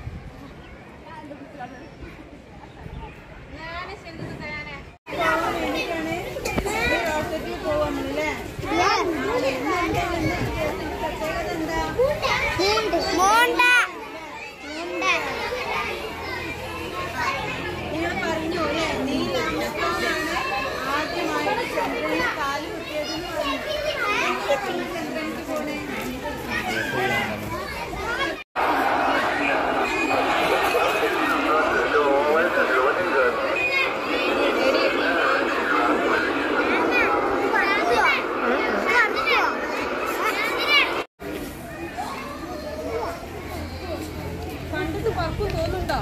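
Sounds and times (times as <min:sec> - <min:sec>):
children talking and calling out: 0:00.0 - 0:46.0
adult voice: 0:29.3 - 0:33.7.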